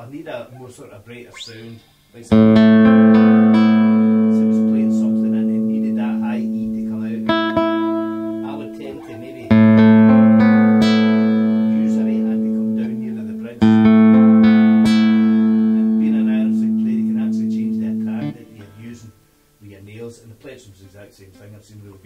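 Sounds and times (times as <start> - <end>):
nylon-string guitar chords: 2.3 - 19.3.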